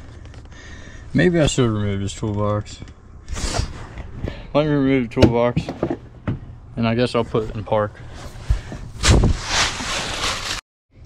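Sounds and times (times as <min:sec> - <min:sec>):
microphone handling noise: 0:08.1 - 0:09.9.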